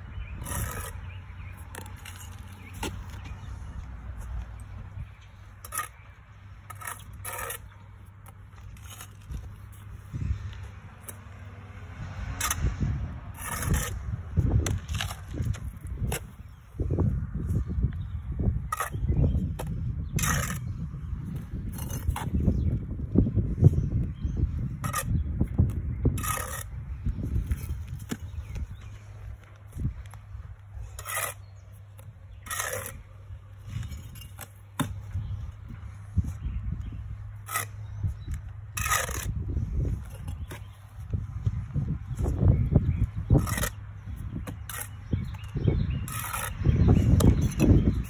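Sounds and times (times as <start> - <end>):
trowel scraping brick and mortar: 0.2 - 11.4, 12.3 - 16.6, 18.5 - 23.0, 23.9 - 36.6, 37.4 - 48.0
low thuds and scuffing: 33.6 - 37.1.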